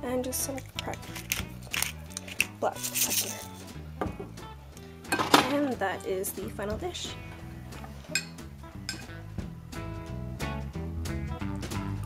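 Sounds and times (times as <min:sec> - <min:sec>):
background music: 0:00.0 - 0:12.0
pepper mill grinding: 0:00.5 - 0:03.7.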